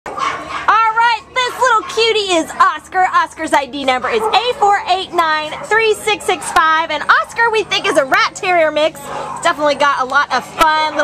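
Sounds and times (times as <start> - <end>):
woman speaking sing-song: 0.7 - 11.0.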